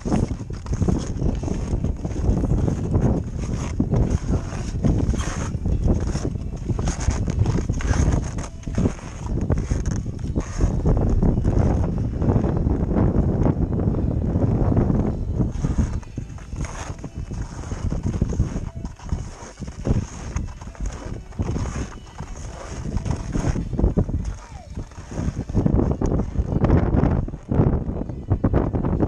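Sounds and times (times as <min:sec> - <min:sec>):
footsteps crunching on snow: 0:00.0 - 0:13.0, 0:15.4 - 0:27.6
wind buffeting microphone: 0:00.0 - 0:29.0.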